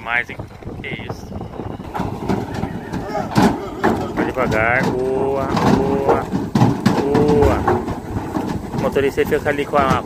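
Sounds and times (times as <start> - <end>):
hooves knocking on trailer floor: 0.0 - 10.0
truck engine running: 0.0 - 10.0.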